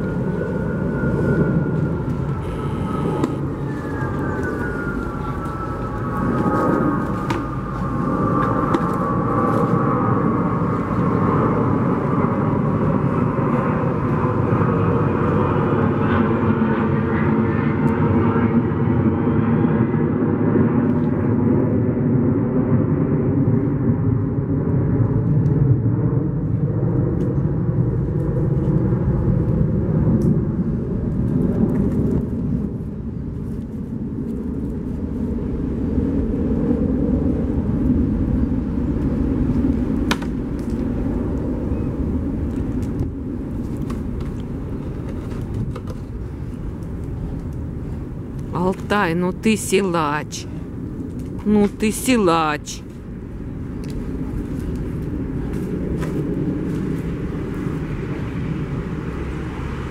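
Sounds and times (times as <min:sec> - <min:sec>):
loud engine drone: 0:00.0 - 0:33.2, 0:49.3 - 0:59.9.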